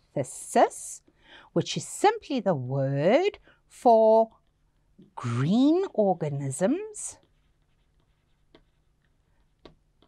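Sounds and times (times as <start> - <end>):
stylus scratching and tapping screen: 3.8 - 10.0.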